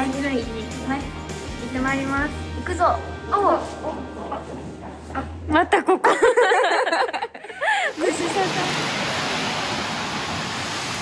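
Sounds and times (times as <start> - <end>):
rain hissing: 7.6 - 11.0
traffic on wet street: 7.9 - 11.0.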